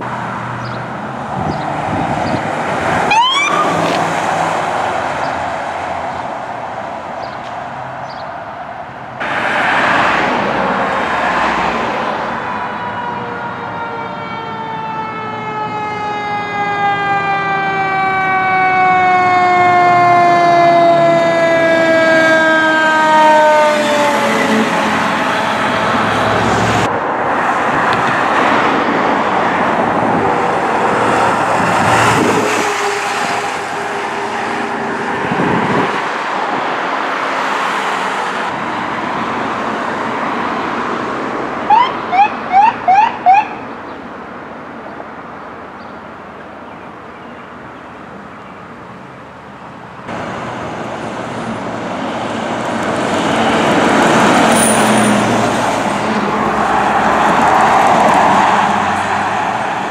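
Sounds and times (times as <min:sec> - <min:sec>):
emergency vehicles passing: 0:00.0 - 0:59.9
mechanical siren wailing: 0:03.0 - 0:03.9, 0:12.7 - 0:26.0, 0:41.7 - 0:43.6
quick rising siren chirps: 0:03.1 - 0:03.9, 0:41.7 - 0:43.6.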